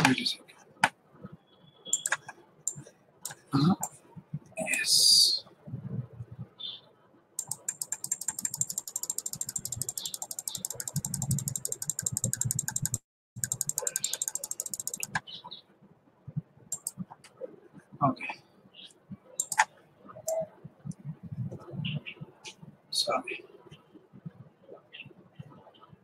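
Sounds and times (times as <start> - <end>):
rapid small clicks: 2.0 - 4.0, 7.4 - 15.2, 16.7 - 17.0, 19.4 - 19.7.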